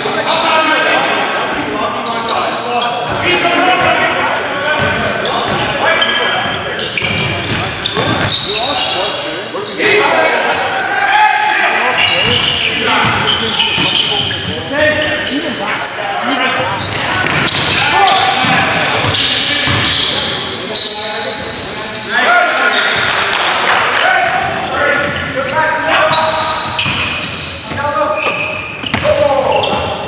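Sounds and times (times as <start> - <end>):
players calling out: 0.0 - 30.0
sneakers squeaking: 0.0 - 30.0.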